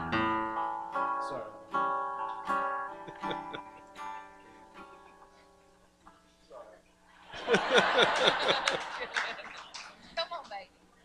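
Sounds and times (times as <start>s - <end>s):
acoustic guitar: 0.0s - 10.5s.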